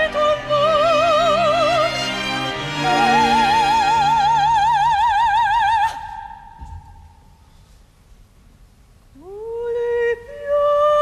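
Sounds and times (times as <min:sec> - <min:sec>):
operatic voice singing: 0:02.8 - 0:06.3.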